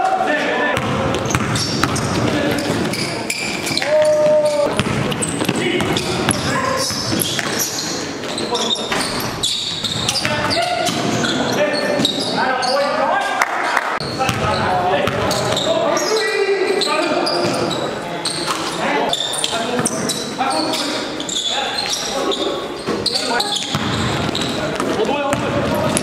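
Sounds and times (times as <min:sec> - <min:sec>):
basketball bouncing on gym floor: 0:00.8 - 0:03.0, 0:03.6 - 0:07.6, 0:14.0 - 0:15.7, 0:23.6 - 0:26.0.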